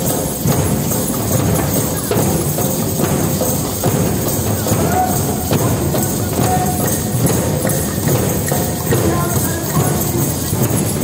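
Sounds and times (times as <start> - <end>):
hand drums playing rhythm: 0.0 - 11.0.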